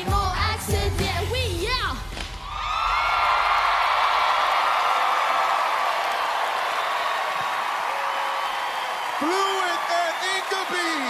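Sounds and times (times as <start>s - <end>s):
music: 0.0s - 2.3s
audience cheering and applauding: 2.3s - 11.0s
screams and whoops: 2.4s - 11.0s.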